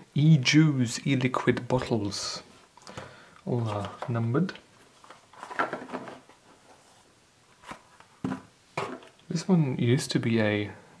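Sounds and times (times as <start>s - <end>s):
cardboard rustling and scraping: 4.8s - 9.2s.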